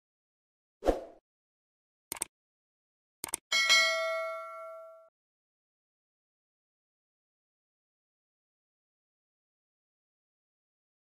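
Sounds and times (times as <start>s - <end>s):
quick clicks: 2.1s - 2.3s, 3.2s - 3.4s
bell ding: 3.5s - 5.1s.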